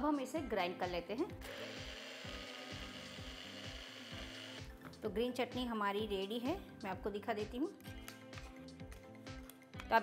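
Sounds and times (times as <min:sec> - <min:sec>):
background music with steady beat: 0:00.0 - 0:10.0
blender motor running: 0:01.4 - 0:04.7.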